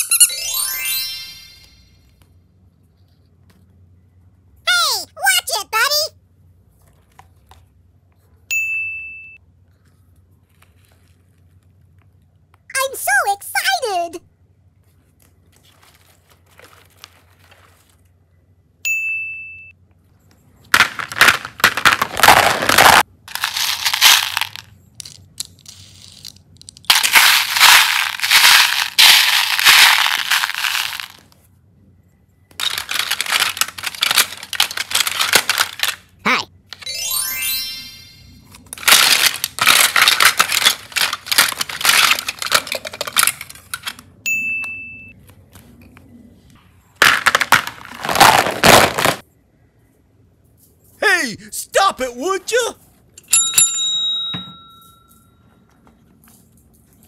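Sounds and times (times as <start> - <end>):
short ding: 8.5 - 9.4, 18.9 - 19.7, 53.3 - 55.1
plastic capsules clattering: 20.7 - 31.4, 32.5 - 36.2, 38.6 - 44.0, 47.0 - 49.2.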